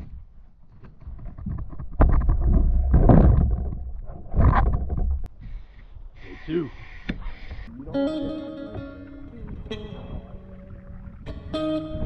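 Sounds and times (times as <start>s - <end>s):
canoe rumbling and knocking: 0.0s - 5.3s, 7.2s - 12.0s.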